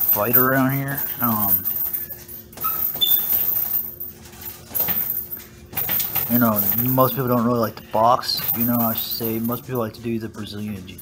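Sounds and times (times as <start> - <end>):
metal hardware jingling: 0.0 - 11.0.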